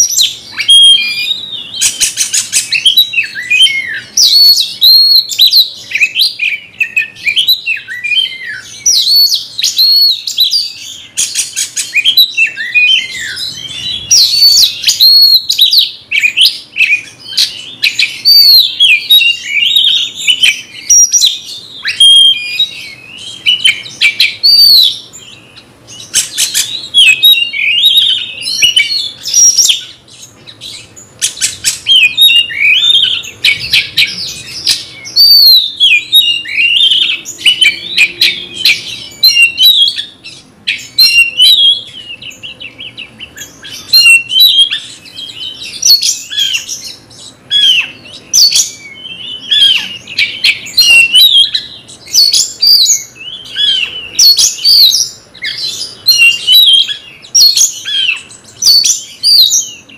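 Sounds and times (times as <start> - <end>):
bird singing whistled phrases: 0.0 - 59.9.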